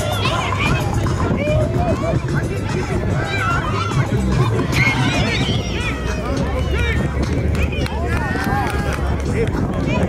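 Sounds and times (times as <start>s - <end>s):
people shouting: 0.0s - 9.2s.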